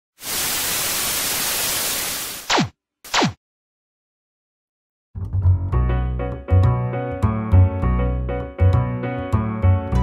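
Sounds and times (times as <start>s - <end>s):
television static hiss: 0.2s - 2.4s.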